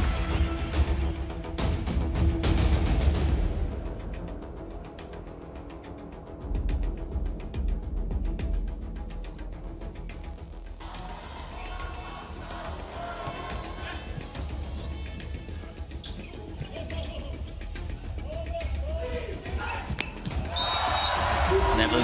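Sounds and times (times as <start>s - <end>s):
crowd cheering: 10.8s - 14.3s, 20.4s - 22.0s
crowd noise: 10.8s - 17.3s.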